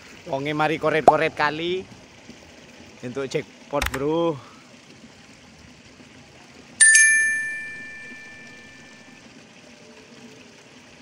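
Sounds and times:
bright bell chime: 6.8s - 9.0s.

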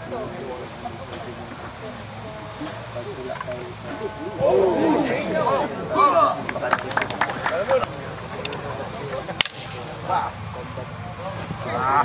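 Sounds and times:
crowd shouting: 3.7s - 7.8s
sharp slap of a strike: 9.4s - 9.8s.

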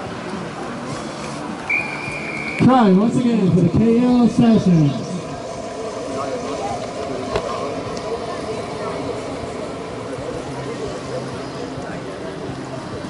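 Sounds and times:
outdoor background noise: 0.0s - 13.0s
spectators chattering: 0.0s - 13.0s.

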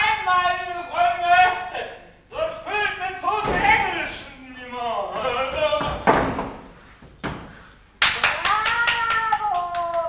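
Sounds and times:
hand claps: 8.0s - 10.0s.

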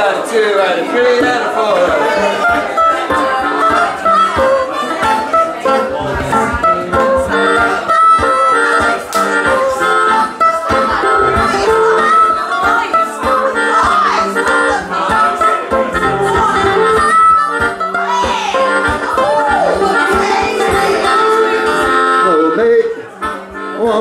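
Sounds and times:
acoustic guitar strumming: 0.0s - 24.0s
harmonica long held notes: 0.9s - 24.0s.

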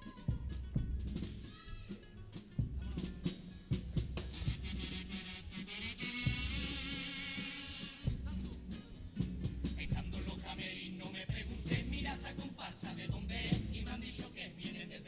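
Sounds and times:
bass drum and snare beat: 0.0s - 15.0s.

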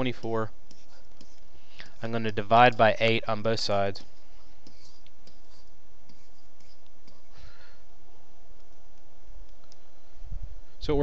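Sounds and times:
low background hum: 0.0s - 11.0s.

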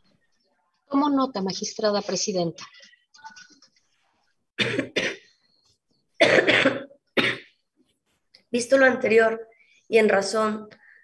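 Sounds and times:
woman coughing: 4.6s - 5.3s, 6.2s - 7.6s.

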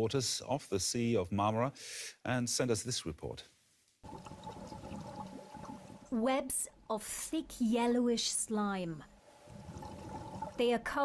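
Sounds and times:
underwater water noise: 4.0s - 6.2s, 9.1s - 10.8s.

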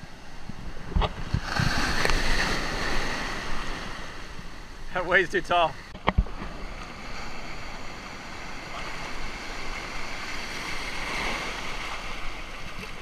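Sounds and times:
waves washing through shallows: 0.0s - 13.0s.

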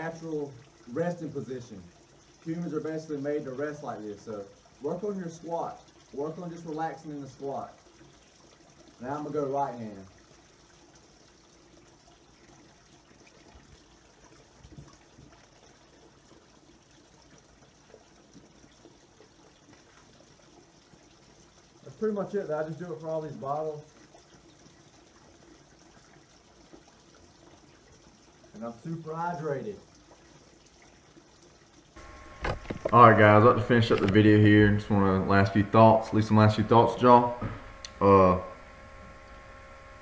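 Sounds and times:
faint steady hum: 0.0s - 40.0s
water trickling into bottle: 29.4s - 40.0s
microphone handling knocks: 32.2s - 33.0s
man speaking: 32.9s - 38.6s.

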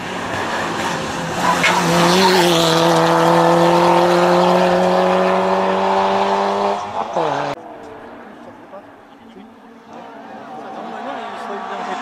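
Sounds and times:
rally car engine at high revs: 0.0s - 7.6s.

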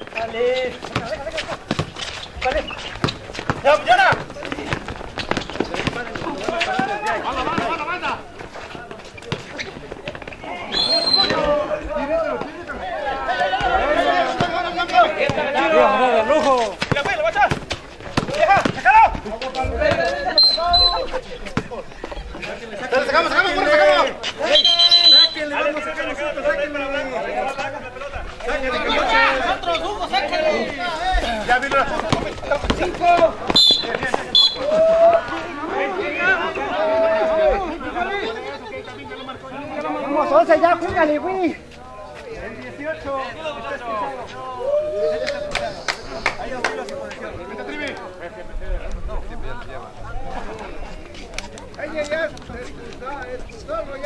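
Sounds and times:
people talking and calling out: 0.0s - 54.0s
ball bouncing on concrete: 0.7s - 7.9s, 9.2s - 10.4s, 13.6s - 15.7s, 16.4s - 20.2s, 31.7s - 34.3s
short high whistle blasts: 10.7s - 11.4s, 24.4s - 25.5s, 33.6s - 34.7s.

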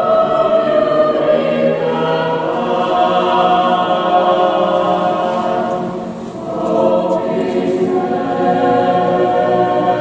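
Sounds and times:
mixed choir singing a cappella: 0.0s - 10.0s.

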